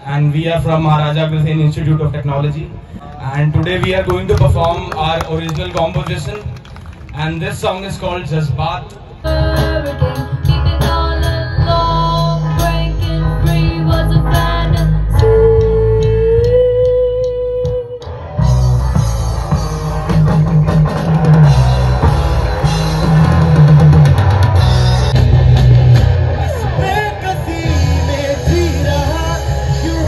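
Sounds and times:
electric guitars: 9.0 - 30.0
drum kit: 9.3 - 30.0
person singing: 26.6 - 30.0.

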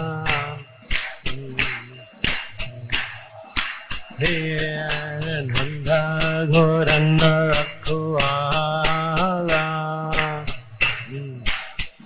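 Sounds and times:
man singing a chant: 0.0 - 11.8
small hand cymbals striking: 0.0 - 12.0.

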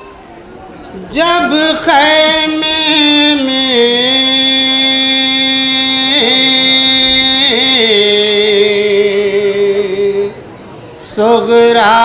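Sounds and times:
man singing long note: 1.0 - 10.4, 11.1 - 12.0.

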